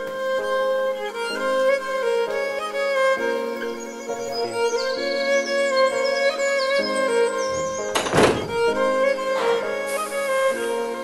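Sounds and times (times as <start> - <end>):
violin-led folk music: 0.0 - 11.0
door shutting thunk: 7.4 - 9.6.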